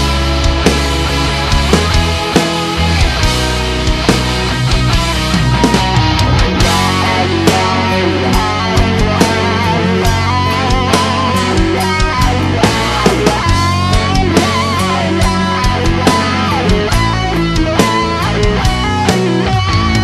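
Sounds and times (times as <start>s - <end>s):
bass guitar: 0.0s - 20.0s
bending lead guitar line: 0.0s - 20.0s
distorted electric guitars: 0.0s - 20.0s
drums: 0.0s - 20.0s.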